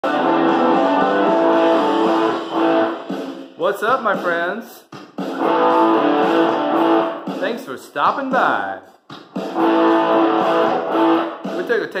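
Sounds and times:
electric guitar notes ringing: 0.0s - 3.1s, 5.4s - 7.3s, 9.6s - 11.4s.

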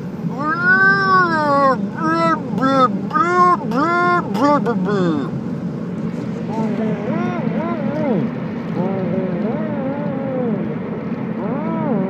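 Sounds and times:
car cabin drone: 0.0s - 12.0s
man making gliding vocal sounds: 0.2s - 5.4s, 6.5s - 12.0s.

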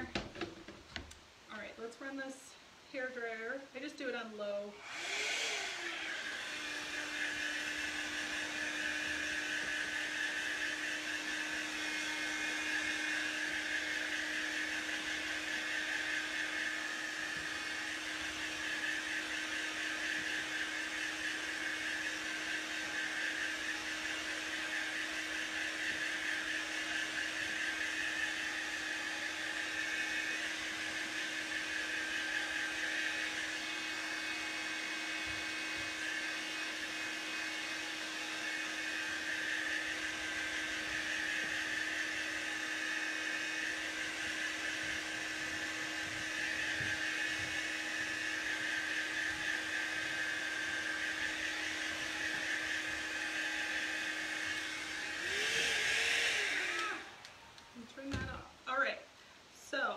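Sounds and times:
hair dryer running: 0.0s - 1.2s, 3.1s - 59.9s.

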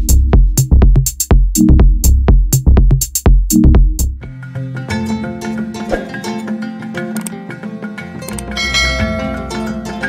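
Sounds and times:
deep bass: 0.0s - 4.2s.

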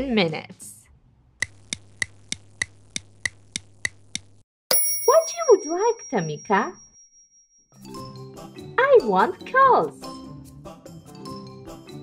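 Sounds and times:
timer ding ringing: 4.7s - 7.8s.

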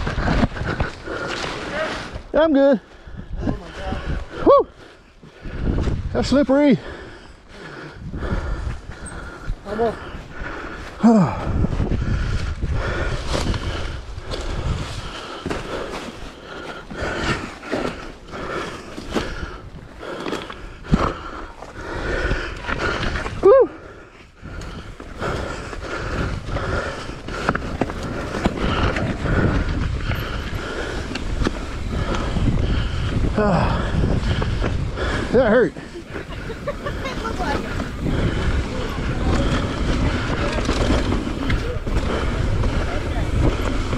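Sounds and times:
bike tyres on dirt trail: 0.0s - 43.9s
rider vocal sounds: 6.0s - 11.6s, 24.6s - 43.9s
bike clattering over rocks: 37.2s - 43.9s.

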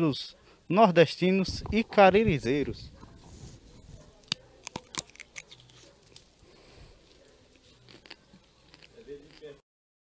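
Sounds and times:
chewing and mouth clicks: 4.1s - 6.4s, 7.0s - 9.6s
crunching bite into fruit: 4.2s - 6.3s, 7.0s - 9.6s.

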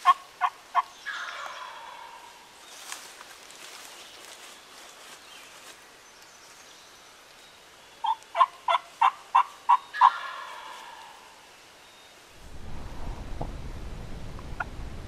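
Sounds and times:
turkey yelps: 0.0s - 2.4s, 8.0s - 11.2s.

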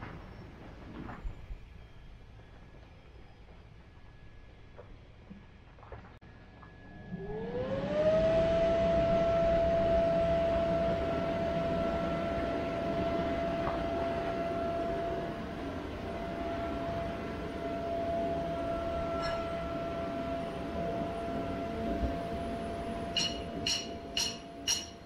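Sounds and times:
inflator blower motor whine: 6.7s - 24.7s.

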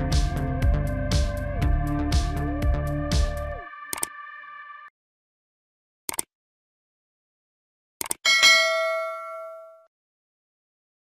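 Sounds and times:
quick clicks: 6.1s - 6.3s, 8.0s - 8.2s
bright bell ding: 8.3s - 9.9s.

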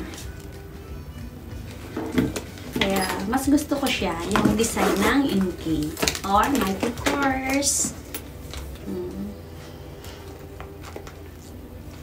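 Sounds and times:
quiet background music: 0.0s - 12.0s
leather bag handling: 1.7s - 8.8s.

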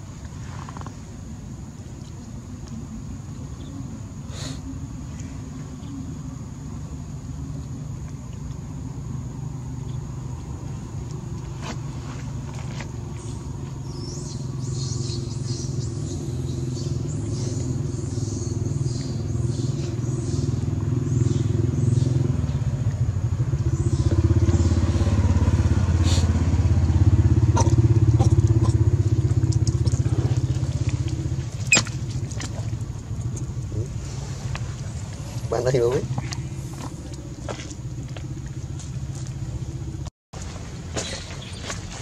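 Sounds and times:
engine running: 4.8s - 42.0s.

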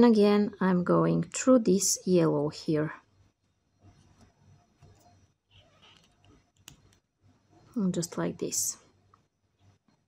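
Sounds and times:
needle and thread through beads: 3.0s - 10.0s.

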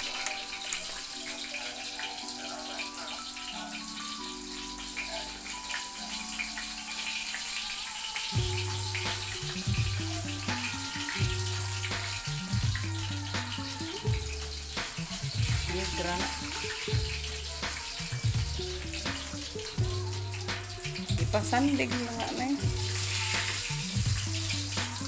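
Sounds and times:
background music with bass: 0.0s - 25.0s
food sizzling in a wok: 0.0s - 25.0s.

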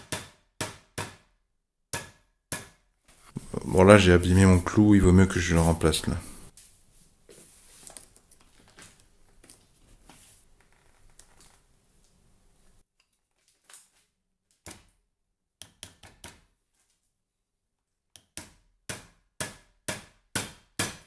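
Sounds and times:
hands handling umbrella: 6.5s - 12.2s.

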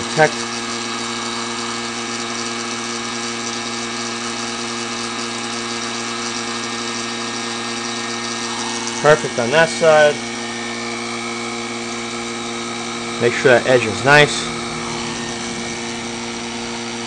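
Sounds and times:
vacuum pump hum: 0.0s - 17.0s
heat gun blowing hiss: 8.0s - 17.0s.

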